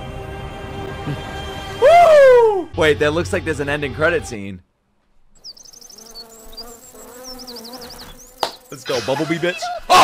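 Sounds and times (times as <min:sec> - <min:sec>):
bumblebee buzzing: 0:05.4 - 0:09.0.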